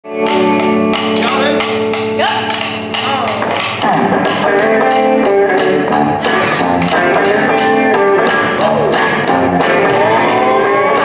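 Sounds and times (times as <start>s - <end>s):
electric guitar notes: 0.1s - 11.0s
drum beat: 0.2s - 11.0s
person singing: 6.0s - 11.0s.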